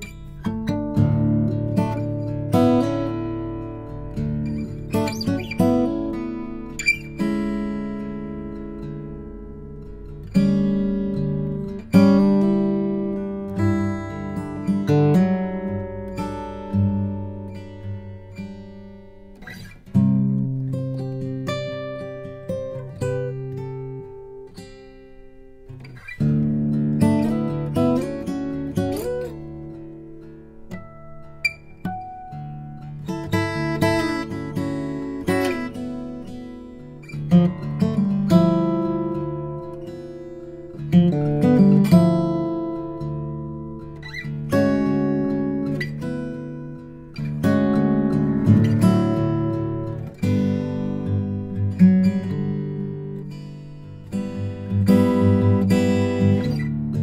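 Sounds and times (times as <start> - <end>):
fingerpicked acoustic guitar: 0.0 - 57.0.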